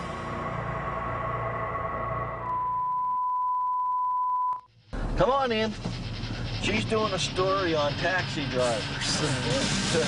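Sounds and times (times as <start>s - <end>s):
steady test-tone beep: 2.4s - 4.7s.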